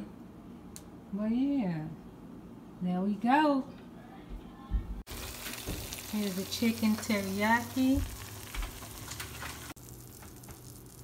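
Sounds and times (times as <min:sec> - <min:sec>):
food sizzling in a frying pan: 0:05.1 - 0:11.0.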